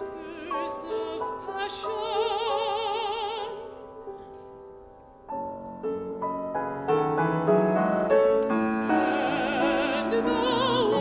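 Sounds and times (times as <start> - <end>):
woman singing: 0.0 - 4.3, 8.8 - 11.0
grand piano chords: 0.0 - 11.0.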